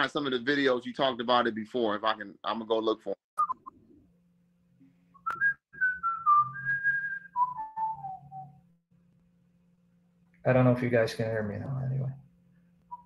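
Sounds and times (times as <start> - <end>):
person whistling a tune: 5.2 - 8.6
faint low hum: 9.0 - 12.9.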